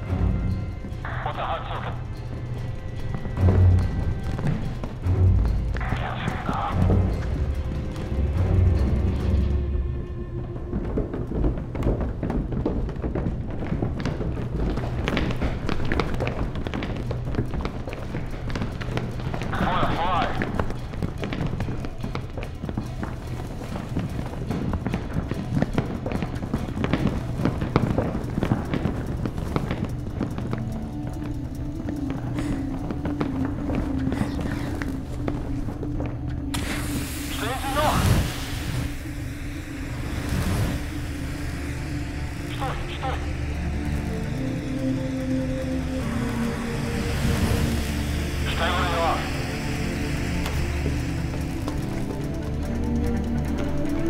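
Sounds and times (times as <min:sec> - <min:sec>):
low droning music score: 0:00.0 - 0:54.0.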